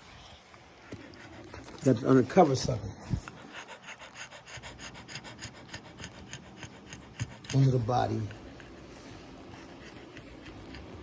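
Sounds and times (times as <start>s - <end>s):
dog panting quickly: 0.8s - 11.0s.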